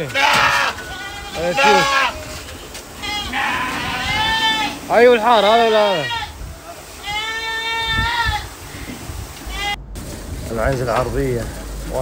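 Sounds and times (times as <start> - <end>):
goat bleating: 0.0 - 6.4, 7.0 - 8.5, 9.4 - 9.8.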